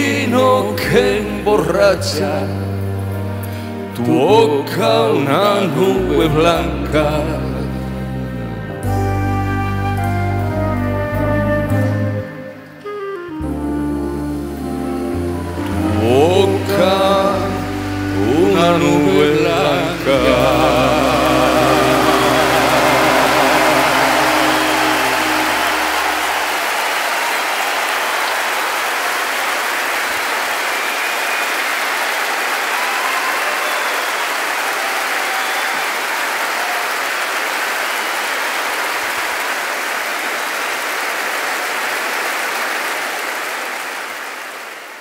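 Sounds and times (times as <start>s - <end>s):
audience applauding: 14.6s - 45.0s.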